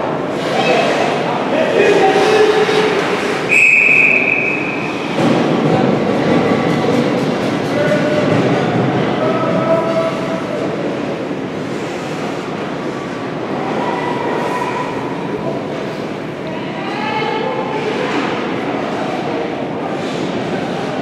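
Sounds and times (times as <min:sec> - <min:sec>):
echoing arena din: 0:00.0 - 0:21.0
referee's whistle: 0:03.5 - 0:04.9.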